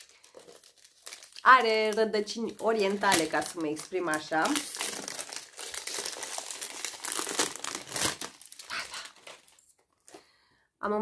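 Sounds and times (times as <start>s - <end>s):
packaging crackling and rustling: 0.0s - 10.2s.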